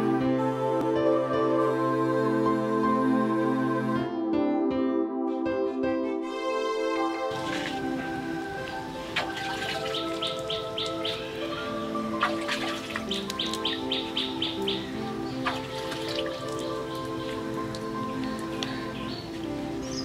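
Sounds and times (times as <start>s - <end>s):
music of long held notes: 0.0s - 20.0s
bird chirping: 9.1s - 20.0s.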